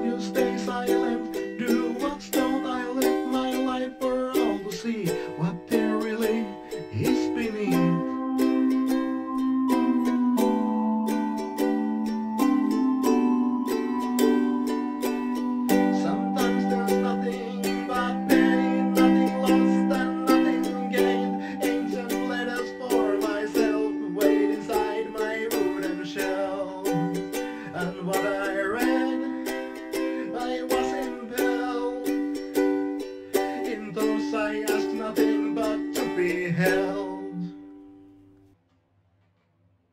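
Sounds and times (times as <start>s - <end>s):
ukulele chords plucked: 0.0s - 38.0s.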